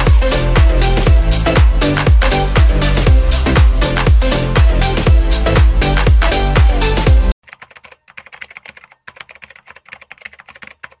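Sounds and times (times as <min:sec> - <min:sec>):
electronic dance music: 0:00.0 - 0:07.4
rapid keyboard clicking: 0:07.4 - 0:11.0.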